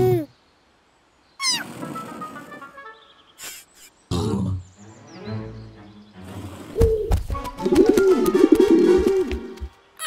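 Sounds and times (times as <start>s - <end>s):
squeaky cartoon cry: 1.4s - 1.6s.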